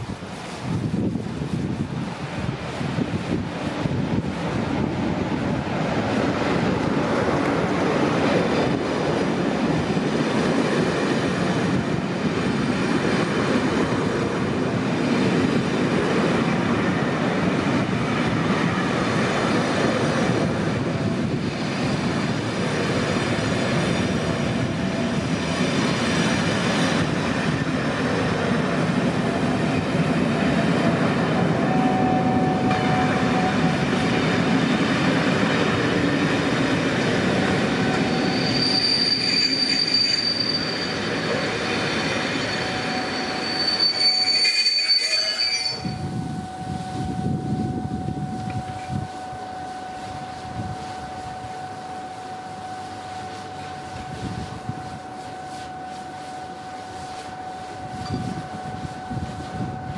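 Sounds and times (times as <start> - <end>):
train rolling on track: 0.0 - 59.9
train wheels squealing: 18.2 - 59.9.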